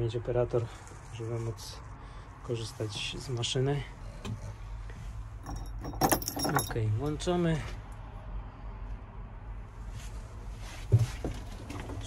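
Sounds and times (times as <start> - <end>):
keys jangling on a ring: 5.4 - 7.2.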